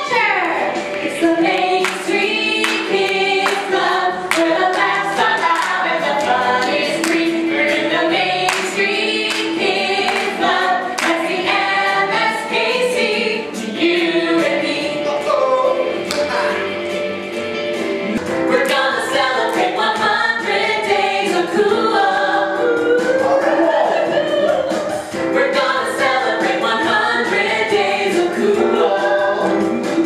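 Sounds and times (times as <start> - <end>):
men and women singing together: 0.7 - 17.4, 18.1 - 30.0.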